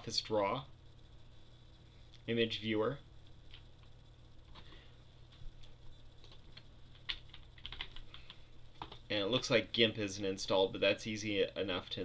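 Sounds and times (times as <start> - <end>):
low steady hum: 0.0 - 12.0
computer keyboard typing: 6.2 - 9.1.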